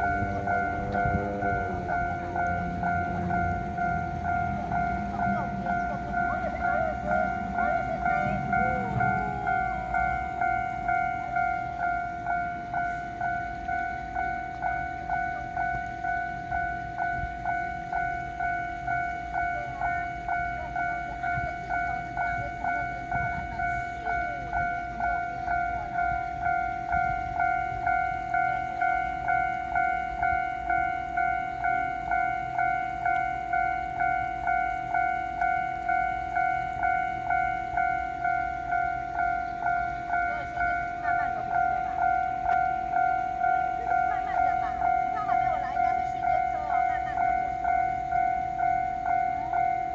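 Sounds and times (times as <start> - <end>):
level crossing bell ringing: 0.0 - 49.9.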